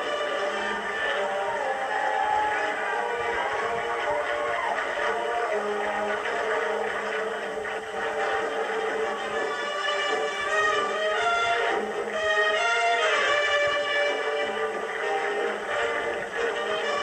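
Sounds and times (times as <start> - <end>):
marching band playing: 0.0 - 17.0.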